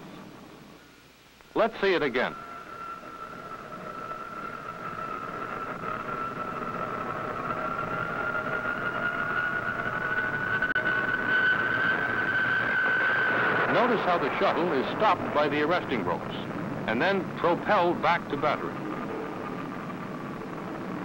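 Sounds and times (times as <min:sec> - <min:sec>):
jet engine high whine: 0:00.0 - 0:21.0.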